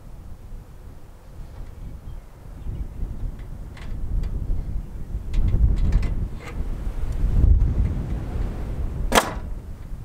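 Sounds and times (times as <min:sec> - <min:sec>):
wind rumble on microphone: 0:00.0 - 0:10.0
nail gun firing: 0:09.1 - 0:09.4.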